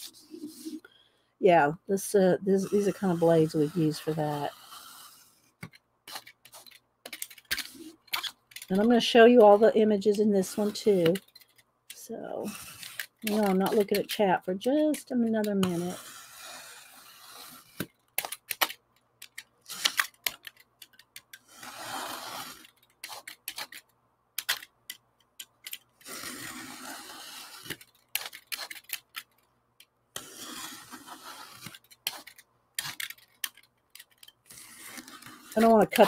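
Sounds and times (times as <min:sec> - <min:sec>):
blade slicing through paper: 0:02.6 - 0:05.4, 0:07.5 - 0:11.2, 0:12.4 - 0:14.1, 0:14.9 - 0:18.6, 0:21.4 - 0:23.8, 0:26.0 - 0:29.1, 0:30.2 - 0:33.1, 0:33.9 - 0:36.0.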